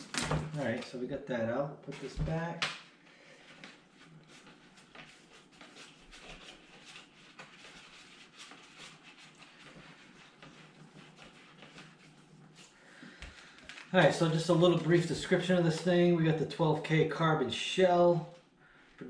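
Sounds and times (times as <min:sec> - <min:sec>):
helmet and packaging rustling: 0:12.7 - 0:15.9.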